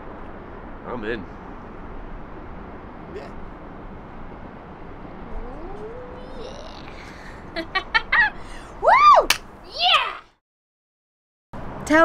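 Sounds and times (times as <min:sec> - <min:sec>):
outdoor background rumble: 0:00.0 - 0:10.4
faint rising tone: 0:04.8 - 0:07.1.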